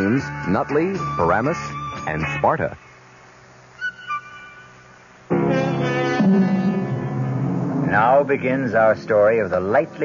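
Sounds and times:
faint background hiss: 0:00.0 - 0:10.0
high-pitched notes: 0:03.8 - 0:09.8.

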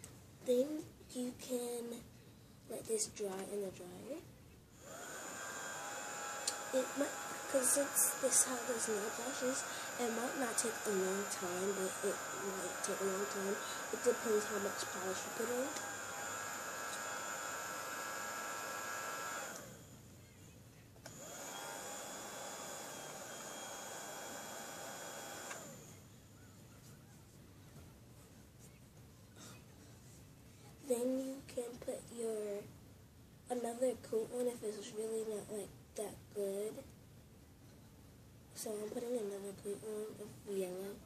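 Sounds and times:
small fan whirring hum: 0:00.0 - 0:41.0.

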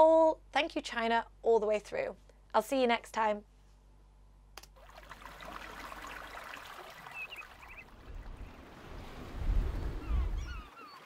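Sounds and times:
birds calling: 0:05.8 - 0:11.0.

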